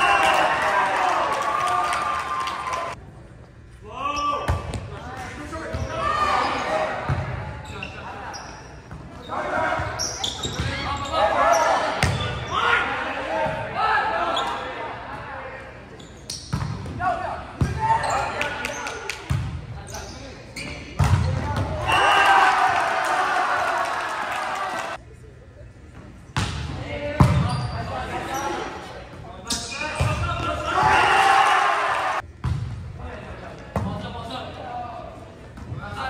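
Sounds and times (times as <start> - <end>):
players and spectators shouting: 0.0 - 3.0, 21.7 - 25.0, 30.2 - 32.2.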